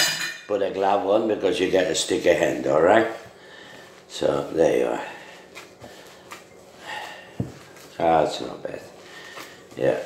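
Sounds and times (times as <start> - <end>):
gloved hand kneading sticky mixture: 1.7 - 10.0.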